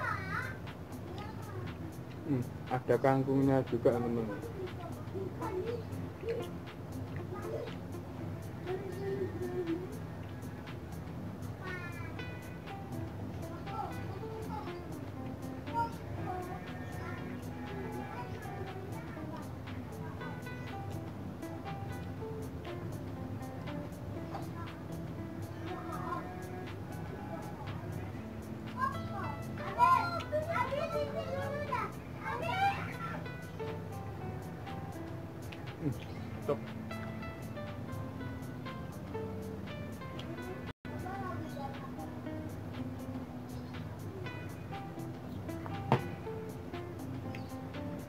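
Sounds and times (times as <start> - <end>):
high-pitched voices chattering: 0.0 - 48.0.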